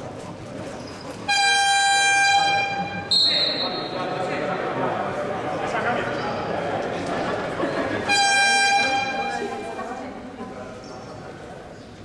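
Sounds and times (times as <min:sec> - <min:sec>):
murmur of voices: 0:00.0 - 0:12.0
scoreboard horn buzzing: 0:01.3 - 0:03.4, 0:08.0 - 0:09.6.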